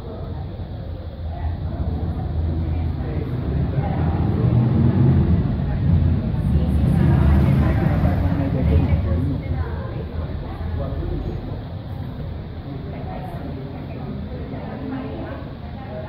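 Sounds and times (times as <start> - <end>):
indistinct voices of people: 0.0 - 16.0
low rumble: 1.1 - 12.7.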